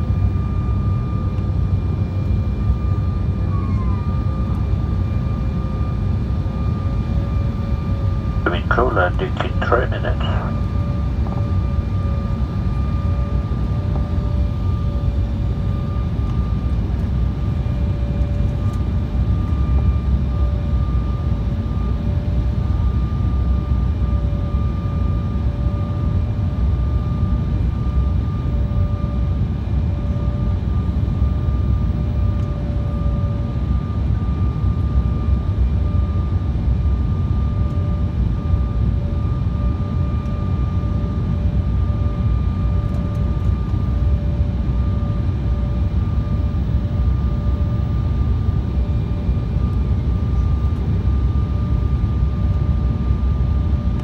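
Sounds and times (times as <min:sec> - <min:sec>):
airliner cabin engine rumble: 0:00.0 - 0:54.0
engine whine: 0:00.0 - 0:54.0.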